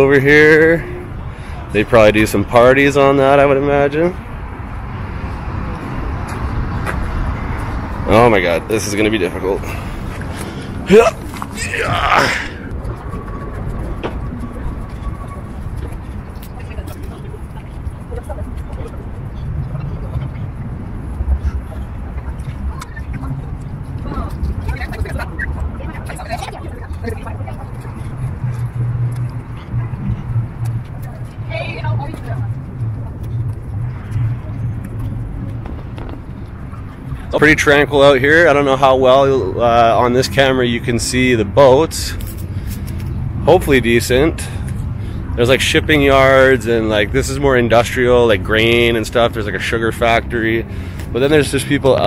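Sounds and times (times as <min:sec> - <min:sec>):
cars going by: 0:00.0 - 0:52.0
faint voices: 0:08.0 - 0:28.7
steady low hum: 0:09.4 - 0:38.0.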